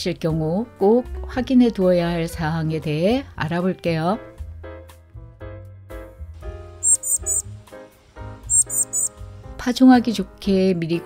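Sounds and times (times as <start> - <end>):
plucked background music: 0.0 - 11.0
young bird chirping: 6.8 - 7.5, 8.5 - 9.2.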